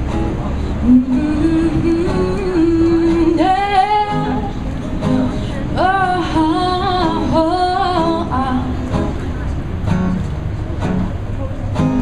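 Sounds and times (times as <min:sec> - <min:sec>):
acoustic guitar: 0:00.0 - 0:12.0
woman singing: 0:00.8 - 0:08.8.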